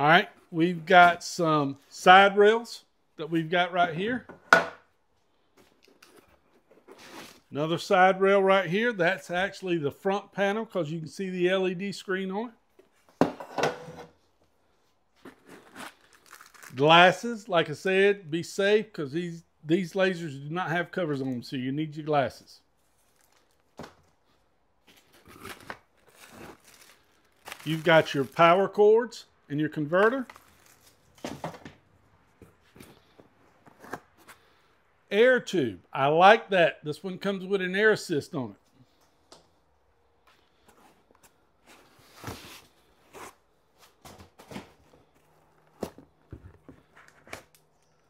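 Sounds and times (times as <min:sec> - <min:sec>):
hands rummaging through cardboard box: 0:26.0 - 0:28.4.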